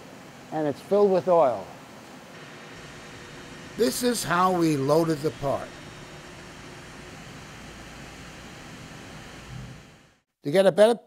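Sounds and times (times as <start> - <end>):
ventilation hiss: 0.0 - 10.6.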